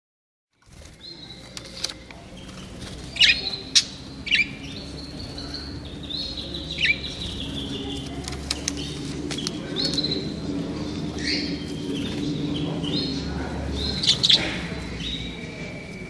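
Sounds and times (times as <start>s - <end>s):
small birds chirping: 0.5s - 16.0s
birds trilling: 0.6s - 16.0s.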